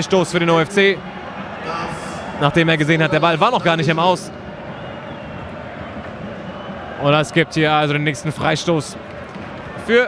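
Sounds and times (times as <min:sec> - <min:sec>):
football stadium crowd noise: 0:00.0 - 0:10.0.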